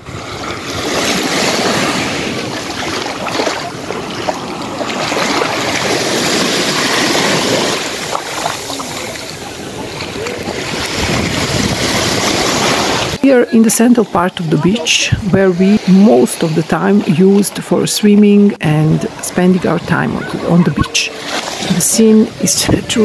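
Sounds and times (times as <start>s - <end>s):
waves breaking on sandy beach: 0.0s - 23.0s.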